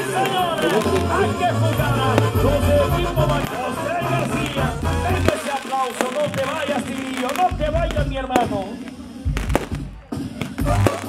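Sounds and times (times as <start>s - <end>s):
brass melody: 0.0s - 11.0s
tuba bass: 1.0s - 5.3s, 10.6s - 11.0s.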